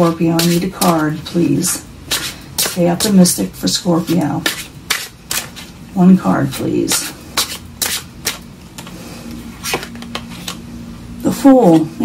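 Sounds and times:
cards being handled: 9.6s - 10.6s.

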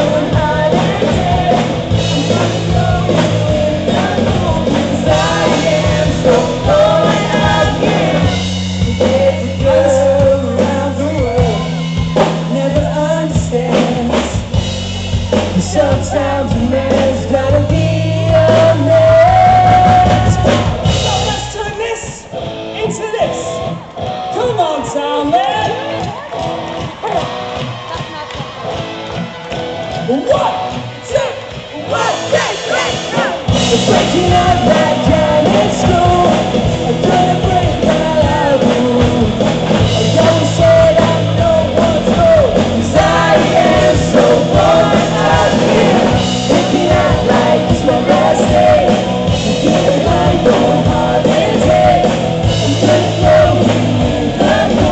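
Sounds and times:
man singing lead vocal: 0.0s - 14.6s, 15.3s - 23.6s, 30.1s - 54.9s
drum hits: 0.0s - 23.4s, 30.7s - 54.9s
electric bass guitar: 0.0s - 27.8s, 28.6s - 54.9s
electric guitar: 0.0s - 54.9s
live pop-rock band playing: 0.0s - 54.9s.

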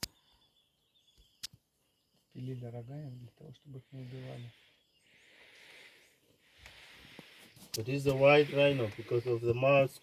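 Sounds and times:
man speaking: 2.4s - 4.6s, 7.8s - 10.0s.

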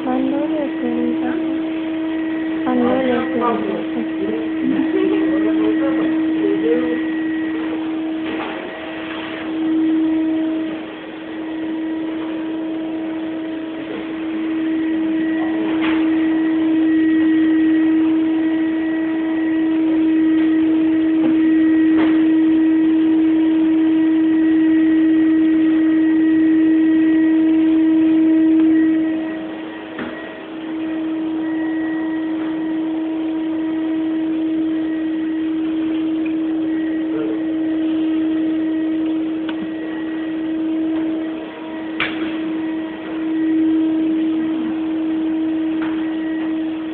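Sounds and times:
extractor hood motor humming: 0.0s - 46.9s.

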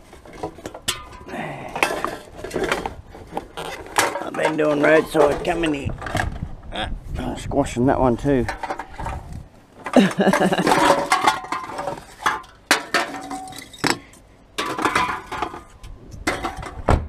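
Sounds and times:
cans and bottles clattering: 0.0s - 6.3s, 8.5s - 16.8s
person laughing: 9.9s - 10.9s.

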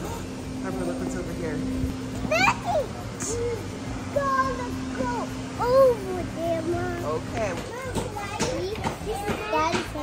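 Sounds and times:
young children chattering: 2.3s - 10.0s.

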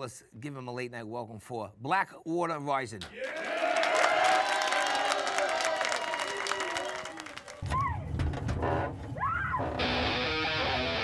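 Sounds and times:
studio audience applauding and cheering: 3.1s - 8.0s.

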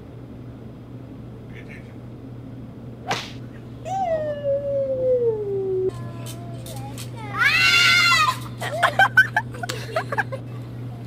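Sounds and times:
golf club swish and smack: 3.0s - 3.4s
loud high yell: 7.3s - 8.4s.

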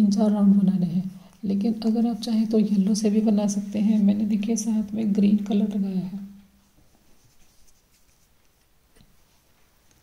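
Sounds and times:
faint rustling: 6.5s - 10.0s.

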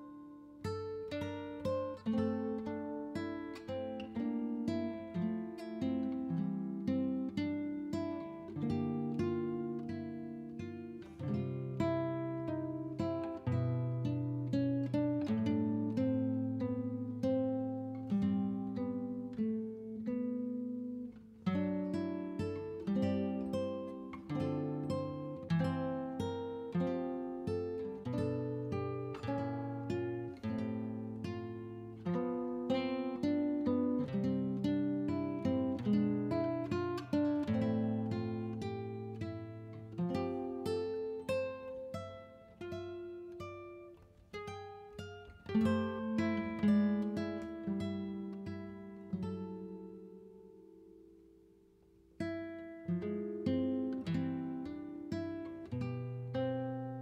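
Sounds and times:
acoustic guitar plucking: 0.0s - 57.0s.

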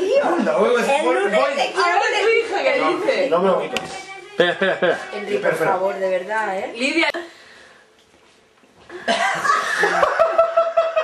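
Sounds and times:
loud laughter: 9.0s - 11.0s.

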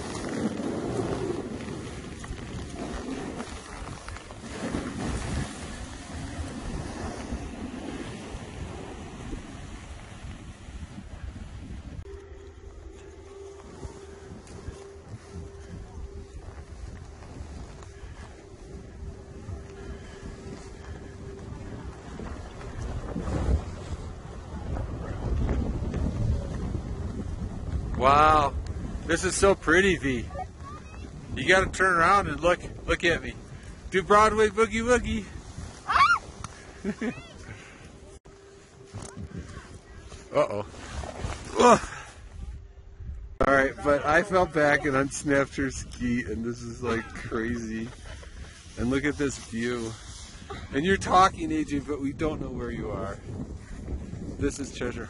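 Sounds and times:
skis sliding on packed snow: 0.0s - 11.9s, 33.8s - 42.2s, 44.1s - 51.8s
wind rushing over microphone: 0.0s - 55.0s.

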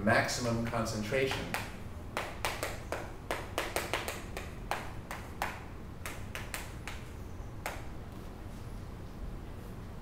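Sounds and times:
chalk writing on chalkboard: 1.3s - 8.3s.

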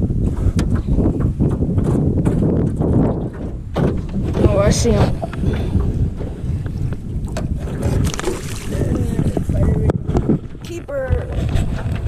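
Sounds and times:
wind buffeting microphone: 0.0s - 12.0s
water splashing: 3.8s - 12.0s.

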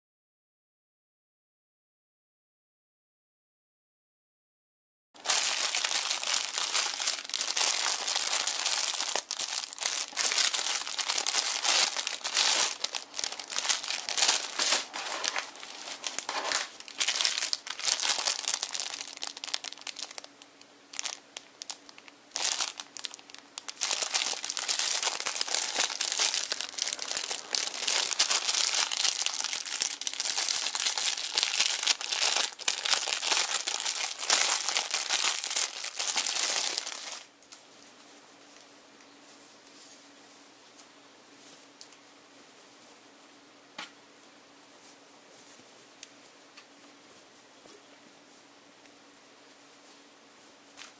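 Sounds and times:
plastic bags crinkling: 5.2s - 37.3s.

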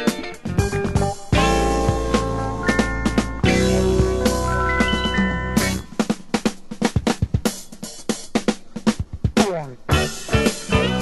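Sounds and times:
funk drum break: 0.0s - 11.0s.

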